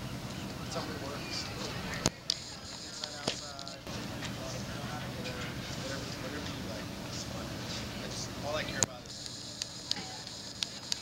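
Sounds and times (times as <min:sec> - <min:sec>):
outdoor noise: 0:00.0 - 0:11.0.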